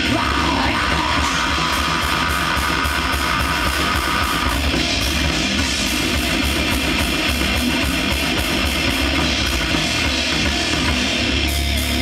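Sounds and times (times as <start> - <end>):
bass guitar: 0.0 - 12.0
distorted electric guitar: 0.0 - 12.0
drum kit: 0.0 - 12.0.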